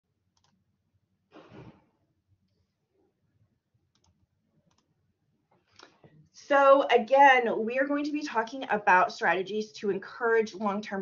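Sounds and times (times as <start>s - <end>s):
faint clicks: 3.9s - 4.9s.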